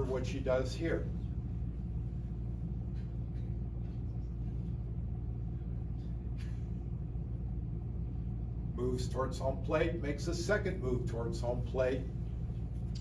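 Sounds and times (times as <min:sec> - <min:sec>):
low room rumble: 0:00.0 - 0:13.0.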